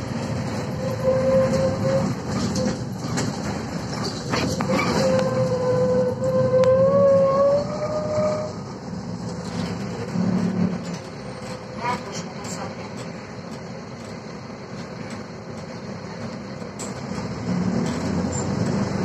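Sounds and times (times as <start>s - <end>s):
bus running rumble: 0.0s - 19.0s
short squeak: 0.7s - 3.2s, 4.0s - 8.6s.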